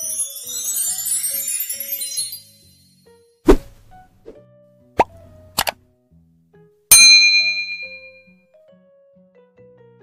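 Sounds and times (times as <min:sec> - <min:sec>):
soft background music: 0:00.0 - 0:07.2, 0:08.1 - 0:10.0
notification bell ding: 0:06.9 - 0:08.2.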